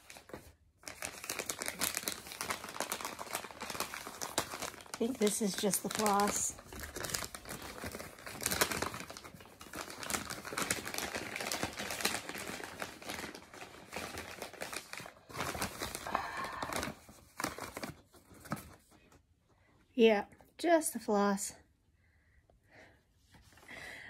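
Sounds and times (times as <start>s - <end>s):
plastic bag crinkling: 0.0s - 18.7s.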